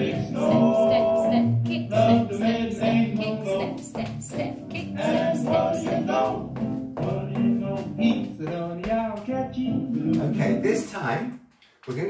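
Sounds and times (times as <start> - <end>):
swing jazz with singer: 0.0 - 10.8.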